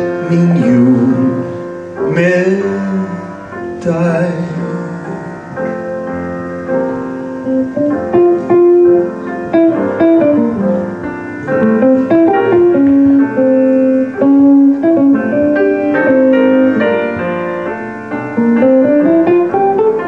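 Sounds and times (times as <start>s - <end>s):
grand piano: 0.0s - 20.0s
jazz combo playing: 0.0s - 20.0s.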